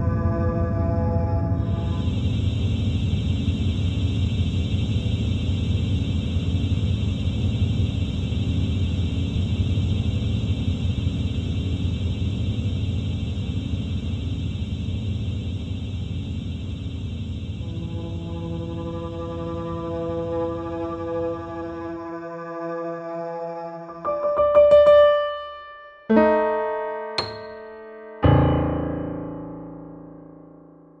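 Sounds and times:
electronic music texture: 0:00.0 - 0:30.9.

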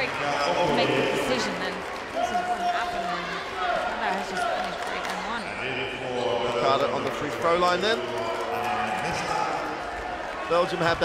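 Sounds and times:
arena crowd murmur: 0:00.0 - 0:11.0.

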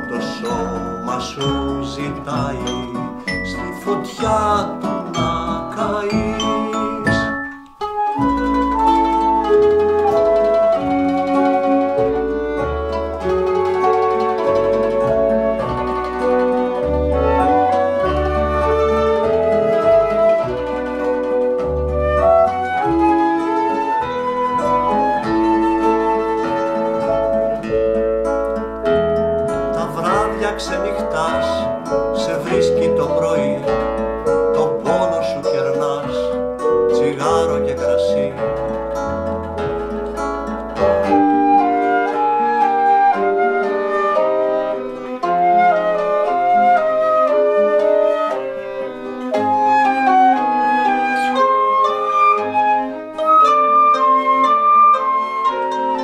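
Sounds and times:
acoustic guitar: 0:00.0 - 0:56.0
double bass notes: 0:00.0 - 0:56.0
flute melody: 0:00.0 - 0:56.0
mandolin: 0:00.0 - 0:56.0.

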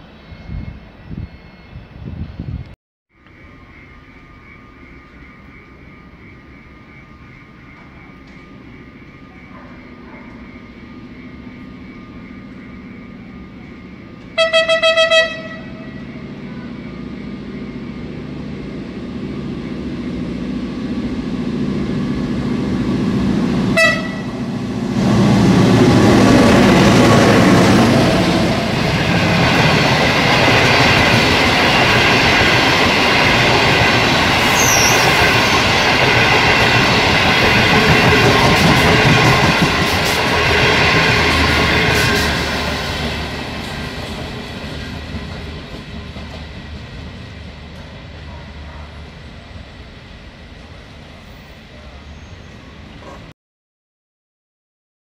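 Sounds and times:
train rumble: 0:03.3 - 0:53.3
train horn: 0:14.2 - 0:16.8, 0:23.6 - 0:29.8.

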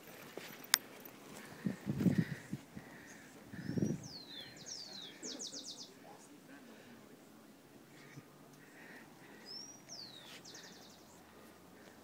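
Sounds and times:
small bird singing: 0:02.3 - 0:06.3, 0:09.3 - 0:11.3.

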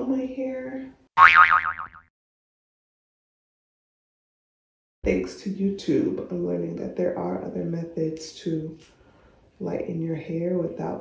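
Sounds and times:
cartoon boing: 0:01.2 - 0:02.1.

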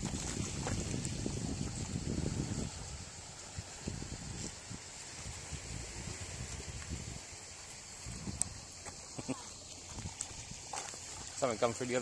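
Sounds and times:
footsteps on pavement: 0:00.0 - 0:01.9, 0:08.4 - 0:09.1, 0:09.7 - 0:11.4.

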